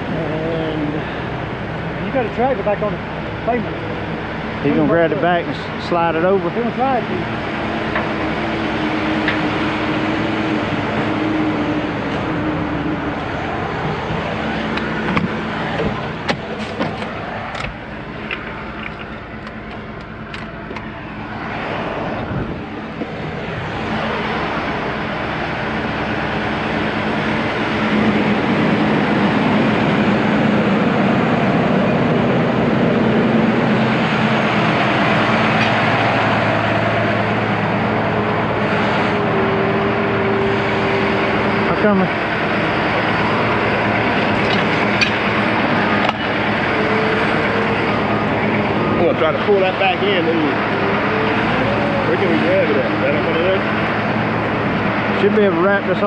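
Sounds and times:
heavy diesel engines under load: 0.0 - 56.0.

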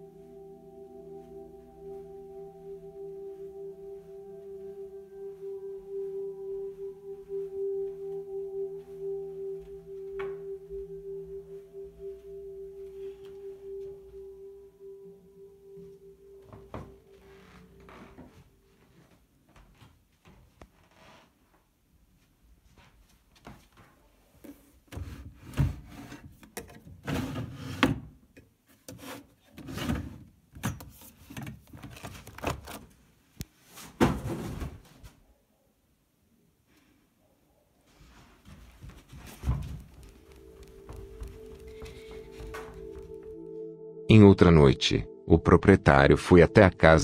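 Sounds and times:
low ringing drone: 0.0 - 18.6, 40.1 - 47.0.

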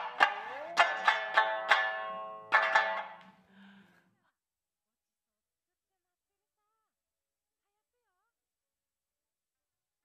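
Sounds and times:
plucked string instrument music: 0.0 - 3.8.

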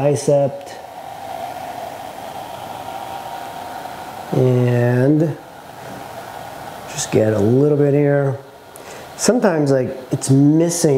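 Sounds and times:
steady background hiss: 0.0 - 10.9.

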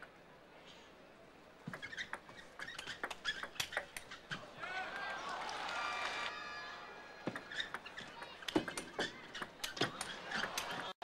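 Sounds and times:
shoes squeaking on floor: 1.6 - 4.4, 7.3 - 10.8
crowd noise: 4.0 - 11.0
ball striking bats and table: 7.2 - 10.9.

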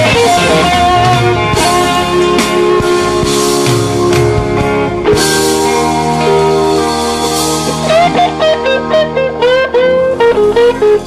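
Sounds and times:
slow blues electric guitar: 0.0 - 11.0.

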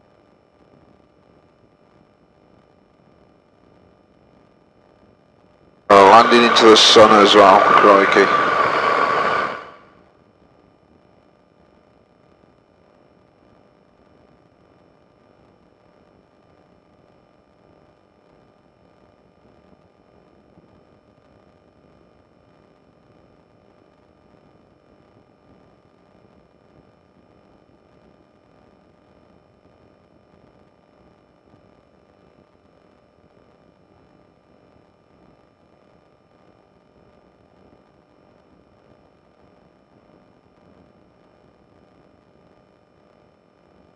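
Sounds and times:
faint steady hiss: 5.9 - 9.8
loud sound cutting off: 5.9 - 9.8.

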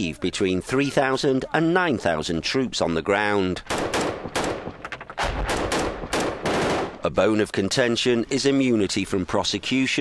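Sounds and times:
rapid rifle shots with echo: 3.6 - 7.0.

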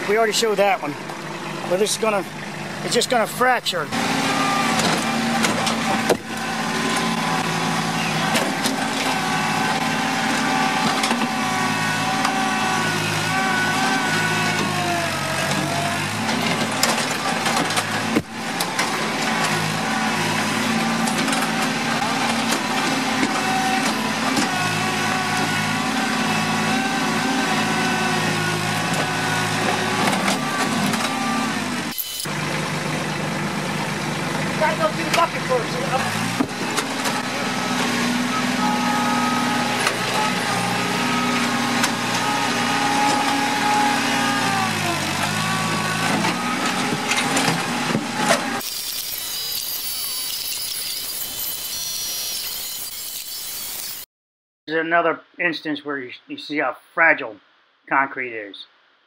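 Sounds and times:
tractor engine running: 0.0 - 53.0.

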